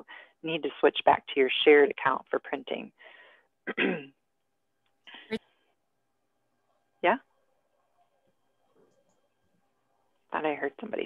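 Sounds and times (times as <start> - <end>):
person clearing throat: 3.7 - 4.1.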